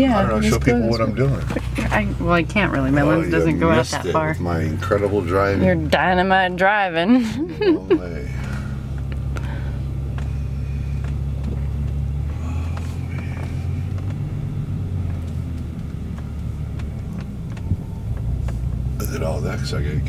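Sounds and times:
car engine and road rumble: 0.0 - 20.0.

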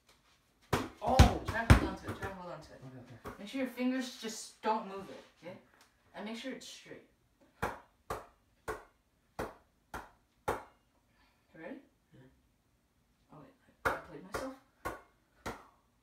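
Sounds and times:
hand slapping basketball: 0.7 - 2.5, 7.5 - 10.8, 13.8 - 15.8.

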